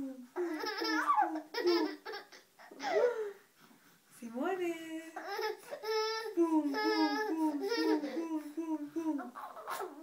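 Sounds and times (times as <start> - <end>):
baby laughing: 0.4 - 3.2, 5.2 - 8.5.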